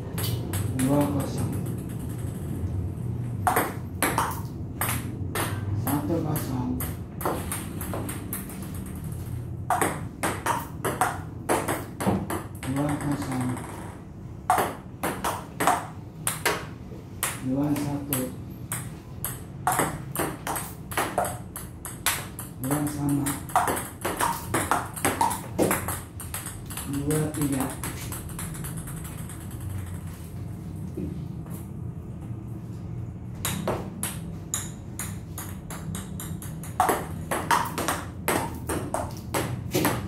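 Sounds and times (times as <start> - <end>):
table tennis ball clicking: 17.2 - 30.0.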